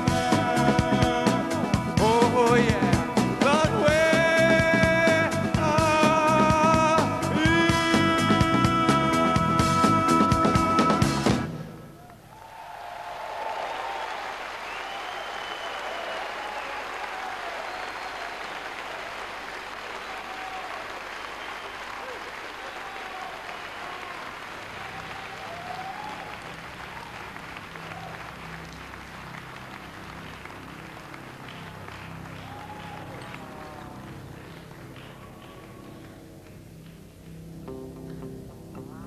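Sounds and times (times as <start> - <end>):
audience applauding and cheering: 11.9 - 37.4
whistles: 13.7 - 18.7, 19.9 - 22.9.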